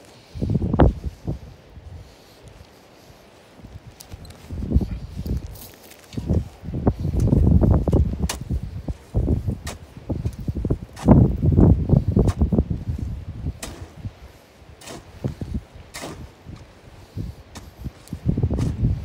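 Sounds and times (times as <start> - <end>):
clothing rustling on microphone: 0.0 - 14.1
digging tool chopping into shale: 13.6 - 14.0, 14.8 - 15.1, 15.9 - 16.3.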